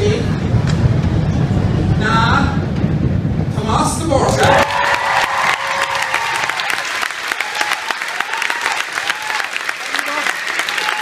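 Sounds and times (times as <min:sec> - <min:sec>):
steady low rumble: 0:00.0 - 0:07.5.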